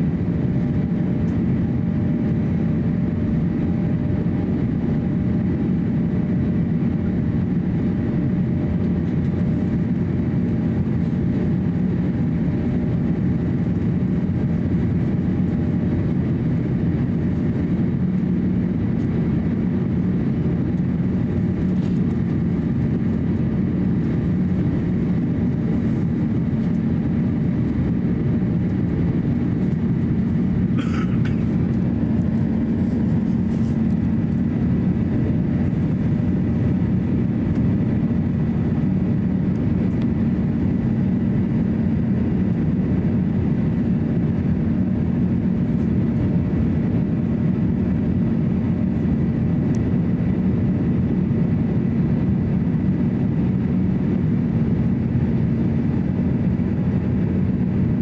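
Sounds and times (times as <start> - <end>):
airflow and jet engines roaring: 0.0 - 58.0
faint steady hums: 0.0 - 58.0.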